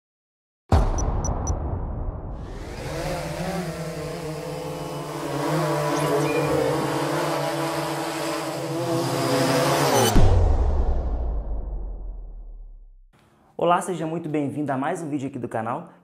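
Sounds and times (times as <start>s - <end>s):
drone rotors buzzing: 2.4s - 10.2s.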